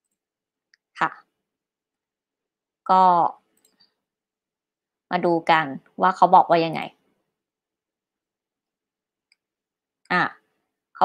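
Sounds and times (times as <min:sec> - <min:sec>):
woman speaking: 0:01.0 - 0:01.3, 0:02.9 - 0:03.4, 0:05.1 - 0:07.0, 0:10.1 - 0:10.4.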